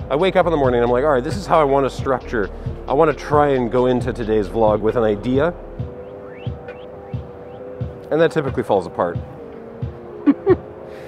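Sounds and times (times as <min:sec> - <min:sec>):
background music with pulsing beat: 0:00.0 - 0:11.0.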